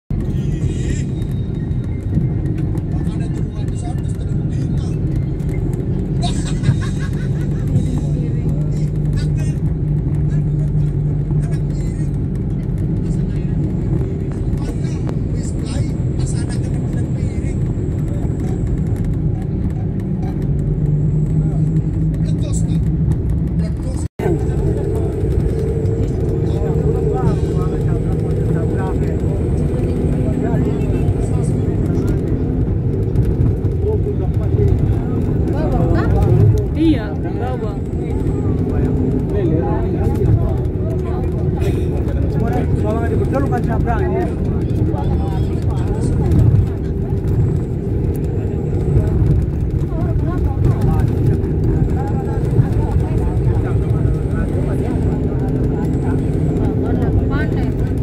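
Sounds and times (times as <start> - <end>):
vehicle engine and road rumble: 0.1 - 58.0.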